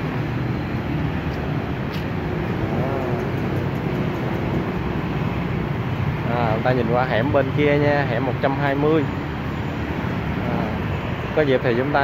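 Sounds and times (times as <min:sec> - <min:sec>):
street traffic noise: 0:00.0 - 0:12.0
motor scooter passing: 0:01.6 - 0:06.3.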